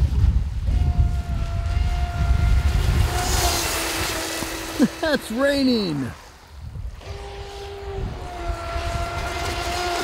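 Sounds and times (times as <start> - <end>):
electric motor whining: 0.6 - 5.2, 6.9 - 10.0.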